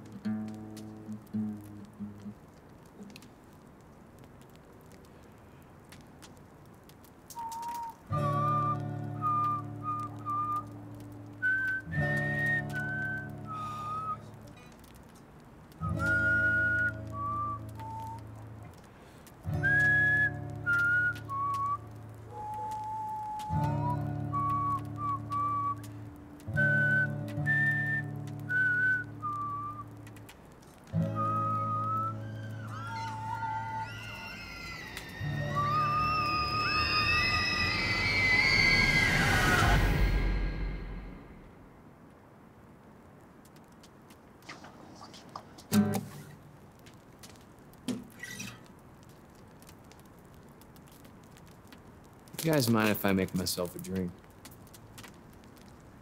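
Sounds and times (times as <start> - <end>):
whistled melody: 7.3 - 14.5, 15.8 - 18.5, 19.4 - 30.1, 30.9 - 41.4.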